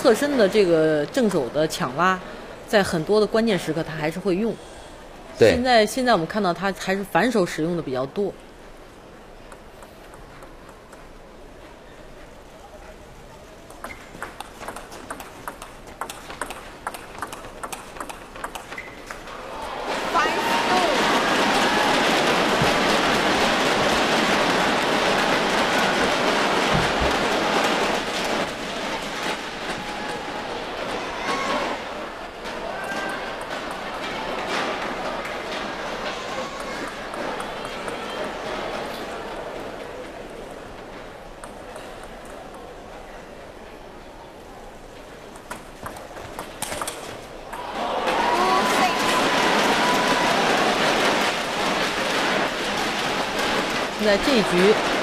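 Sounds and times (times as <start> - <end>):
ping pong ball clicking: 13.7 - 19.2
crowd cheering and applauding: 19.3 - 28.5, 47.4 - 55.0.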